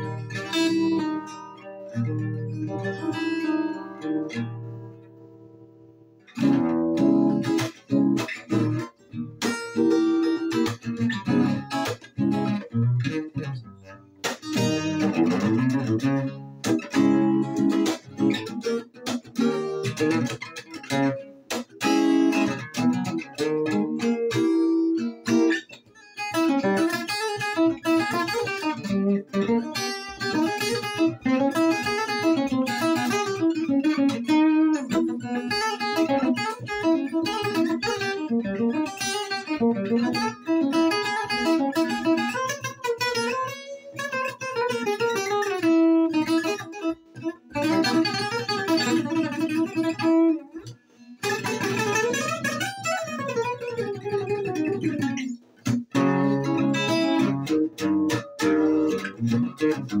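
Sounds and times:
acoustic guitar playing: 0.0s - 60.0s.

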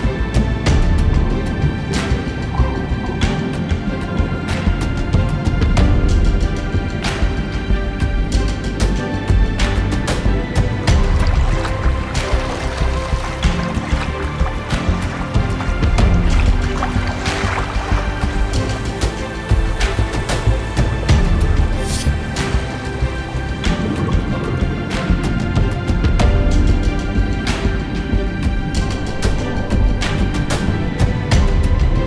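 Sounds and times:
soundtrack music with low notes: 0.0s - 32.0s.

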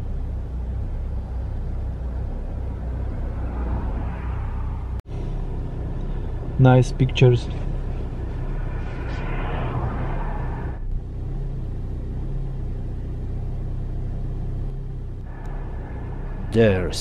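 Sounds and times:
car engine hum: 0.0s - 17.0s
tyre and road noise: 0.0s - 17.0s.

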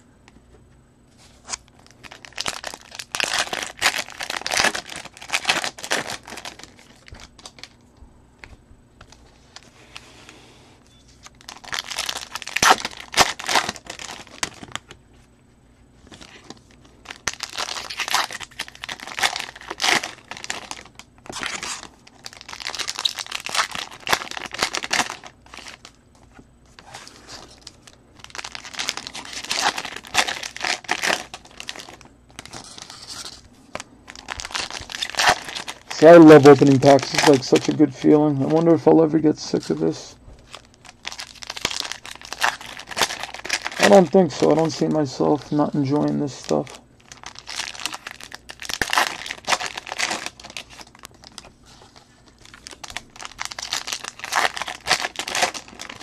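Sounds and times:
foil wrappers tearing and crinkling: 1.4s - 7.8s, 11.2s - 15.0s, 16.1s - 26.0s, 26.8s - 56.0s.

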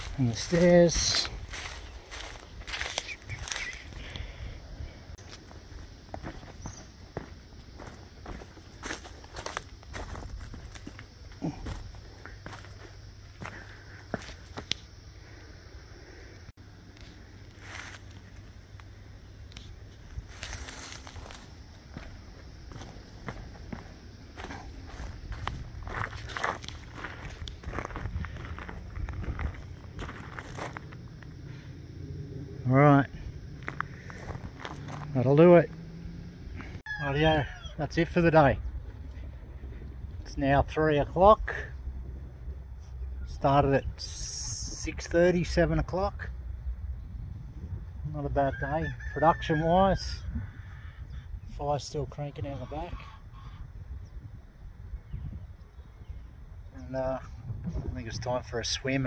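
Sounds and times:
footsteps on gravel and dirt: 0.0s - 4.1s, 5.2s - 14.9s, 17.0s - 18.9s, 19.6s - 31.5s, 33.4s - 35.8s.

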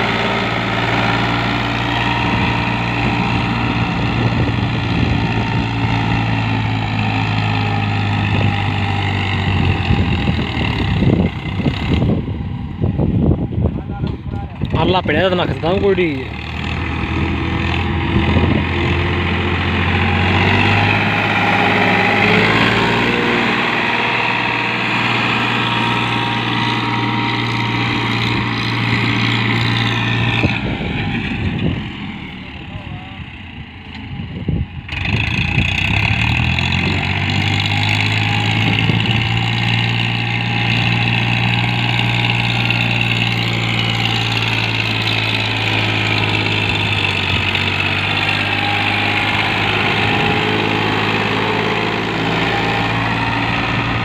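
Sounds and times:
tractor diesel engine revving: 0.0s - 13.7s, 14.3s - 54.0s.

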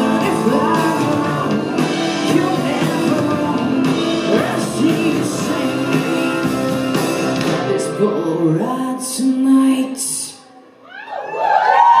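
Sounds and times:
electric guitar: 0.0s - 8.8s
live pop-punk band: 0.0s - 9.6s
person singing: 0.0s - 10.8s.

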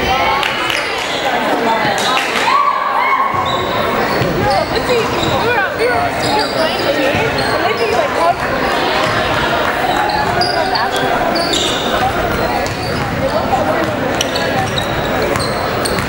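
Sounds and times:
people calling out and chattering: 0.0s - 16.0s
sneakers squeaking on hardwood: 3.3s - 16.0s
basketball bouncing: 8.4s - 9.5s, 11.8s - 16.0s.

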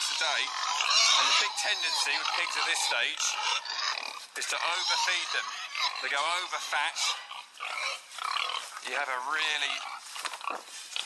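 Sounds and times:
pigs calling: 0.0s - 11.0s.

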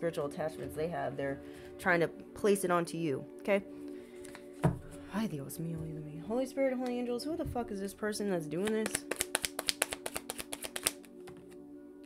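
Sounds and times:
soft background music: 0.0s - 12.0s
cards being shuffled: 8.6s - 11.6s.

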